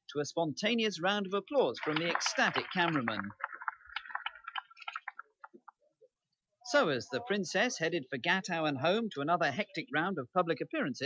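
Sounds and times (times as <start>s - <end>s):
applause: 1.4s - 5.7s
scattered hand claps: 1.5s - 5.8s.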